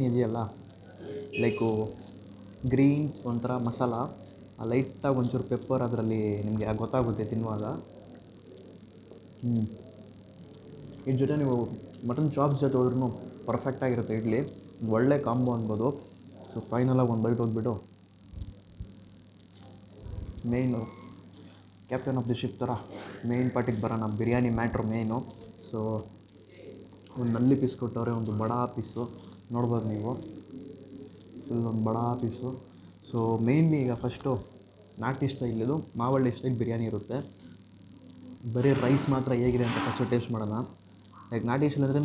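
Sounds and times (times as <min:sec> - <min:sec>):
man speaking: 0:00.0 - 0:02.0, 0:02.6 - 0:08.0, 0:09.4 - 0:09.8, 0:11.0 - 0:17.9, 0:20.4 - 0:21.1, 0:21.9 - 0:26.1, 0:27.1 - 0:30.7, 0:31.4 - 0:37.4, 0:38.4 - 0:42.0.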